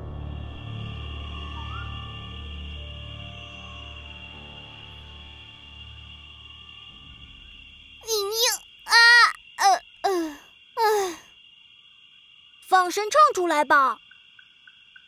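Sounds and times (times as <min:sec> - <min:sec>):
night insects chirring: 0:00.0 - 0:15.0
girl's strained vocal sounds: 0:08.1 - 0:11.2.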